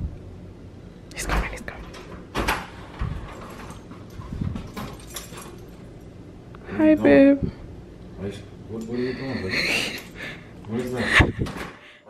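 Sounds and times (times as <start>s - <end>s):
dull thumps of door and steps: 1.3s - 5.4s.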